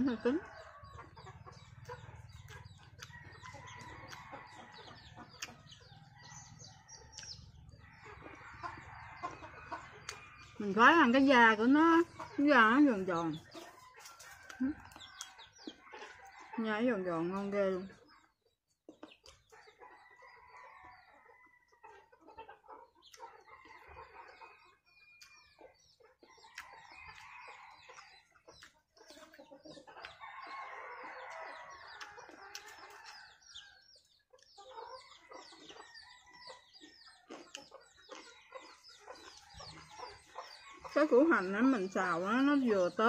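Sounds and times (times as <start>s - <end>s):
chickens clucking: 0.0s - 43.0s.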